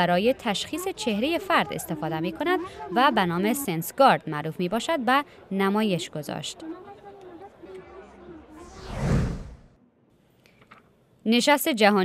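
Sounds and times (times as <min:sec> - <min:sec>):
whoosh sweeping down in pitch: 0:08.6 - 0:09.7.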